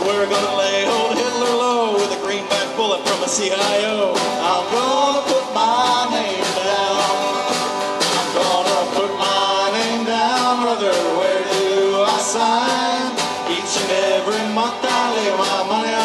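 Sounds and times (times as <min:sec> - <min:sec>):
snare drum: 0:00.0 - 0:16.0
strummed acoustic guitar: 0:00.0 - 0:16.0.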